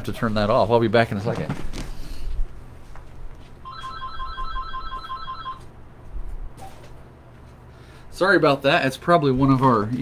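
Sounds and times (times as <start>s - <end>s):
telephone ringing rapid beeps: 3.6s - 5.6s.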